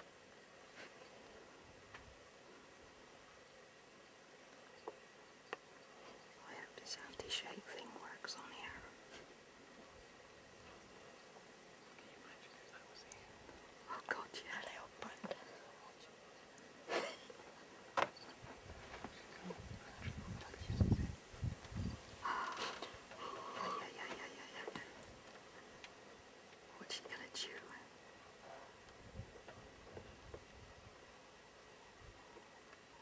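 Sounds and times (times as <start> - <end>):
hushed whispering voices: 6.4 - 9.0, 11.9 - 17.6, 19.0 - 21.2, 22.2 - 25.0, 26.7 - 27.9.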